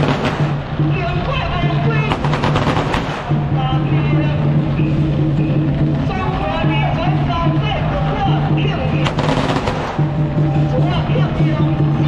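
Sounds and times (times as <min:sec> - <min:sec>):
firecrackers crackling: 0:00.0 - 0:05.2, 0:08.9 - 0:11.2
procession music with low beat: 0:00.0 - 0:12.0.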